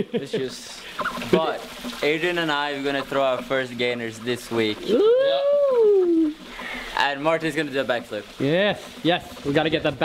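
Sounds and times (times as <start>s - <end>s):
person's drawn-out ooh: 4.9s - 6.4s.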